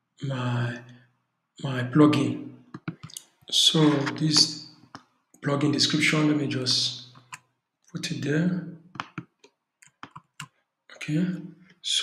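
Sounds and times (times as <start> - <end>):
keyboard and mouse clicks: 2.7 - 4.5, 8.9 - 10.5.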